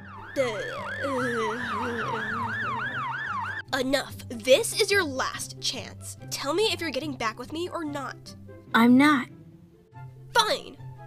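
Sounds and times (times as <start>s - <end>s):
ambulance siren yelping: 0.0s - 3.7s.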